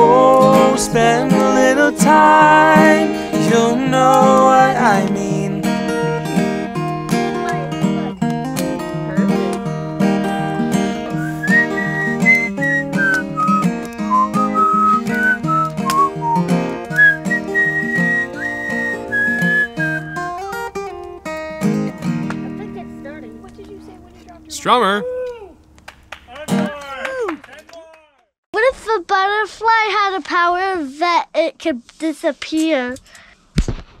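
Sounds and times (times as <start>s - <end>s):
strummed acoustic guitar: 0.0s - 24.9s
whistled melody: 11.1s - 20.8s.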